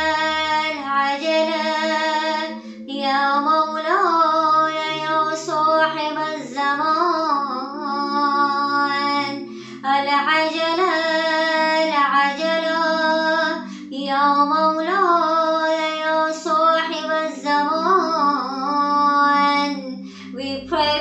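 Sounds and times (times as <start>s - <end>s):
low drone: 0.0s - 21.0s
woman chanting: 0.0s - 21.0s.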